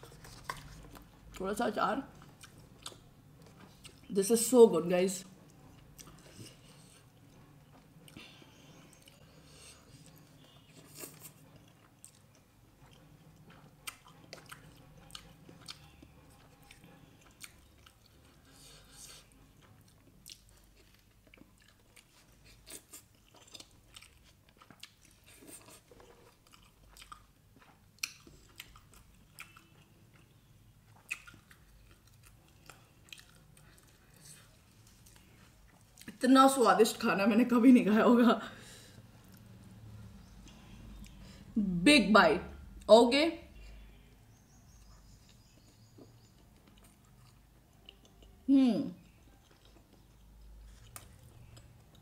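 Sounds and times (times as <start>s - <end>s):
person chewing: 2.1s - 4.1s, 5.4s - 36.2s, 40.2s - 41.4s, 44.6s - 52.0s.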